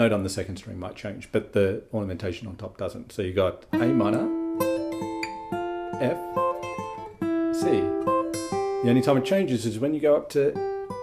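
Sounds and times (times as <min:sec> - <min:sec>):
acoustic guitar fingerpicking: 0:03.7 - 0:09.6, 0:10.6 - 0:11.0.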